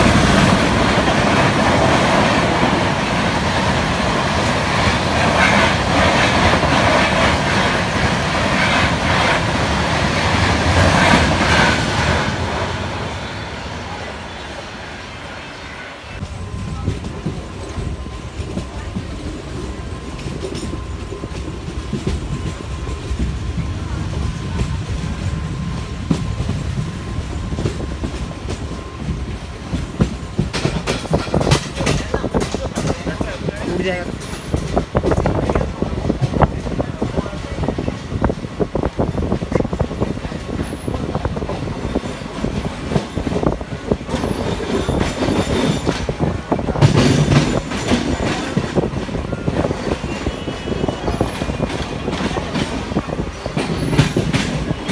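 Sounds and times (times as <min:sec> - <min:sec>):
faint train whine: 0:00.0 - 0:54.9
train coaches rushing past: 0:00.0 - 0:54.9
wheel clatter over rail joints: 0:16.2 - 0:54.9.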